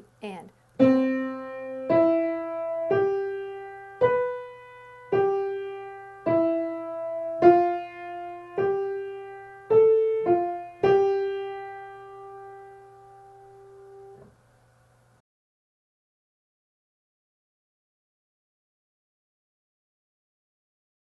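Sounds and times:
piano melody: 0.8 - 14.2.

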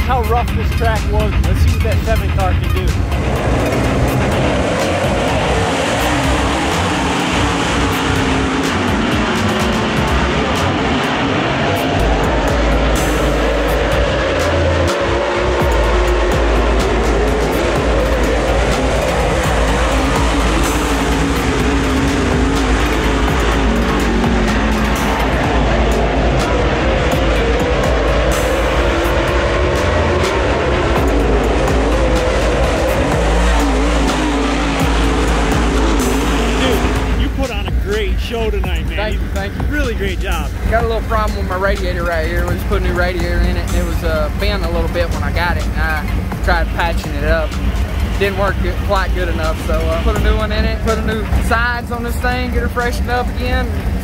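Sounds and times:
background music: 0.0 - 54.0
race car engines: 0.0 - 54.0.

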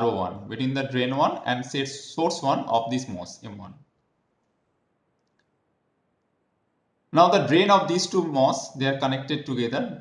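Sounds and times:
faint room hiss: 0.0 - 10.0
very faint clicks: 4.0 - 5.6.

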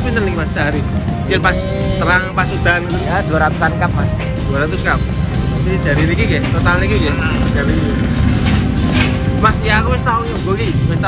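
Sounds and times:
low rumble of street traffic: 0.0 - 11.0.

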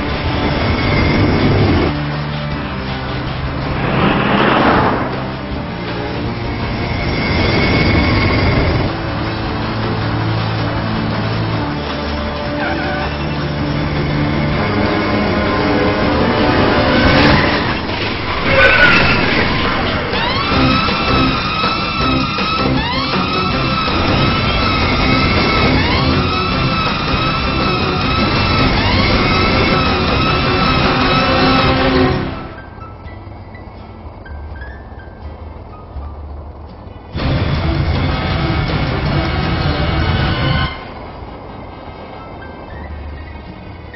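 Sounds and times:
road traffic noise: 0.0 - 43.9
music playing: 1.5 - 6.8
emergency sirens wailing: 19.3 - 32.5.

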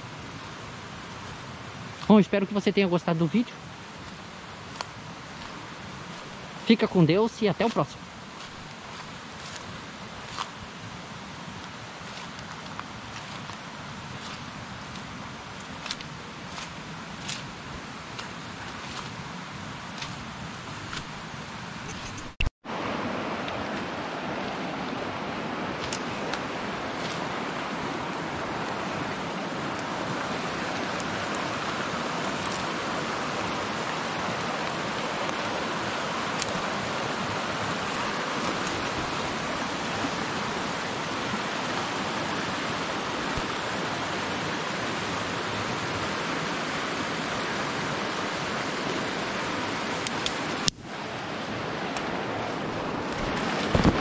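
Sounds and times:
flowing river water: 0.0 - 54.0.

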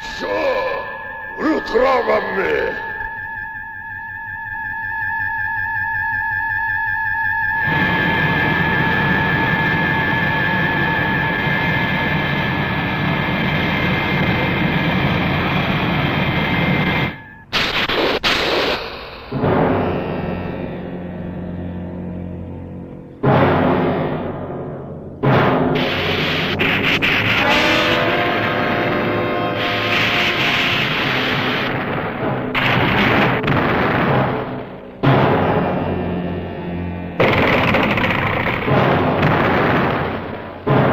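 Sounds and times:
film music: 0.0 - 17.5, 19.3 - 40.9
jet engine whine: 0.0 - 40.7
loud booms and rumbles: 23.1 - 40.9.

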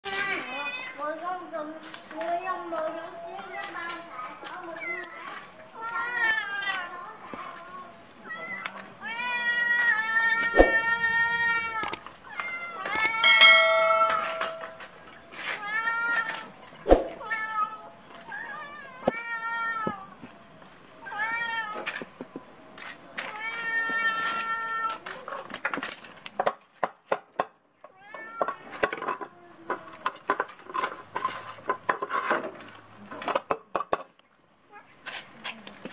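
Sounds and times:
cats meowing: 4.7 - 13.4, 17.2 - 20.2
sharp clicks: 13.0 - 13.2.

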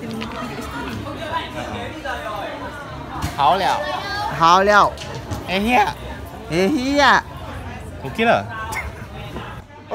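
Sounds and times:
people chattering: 0.0 - 9.9.

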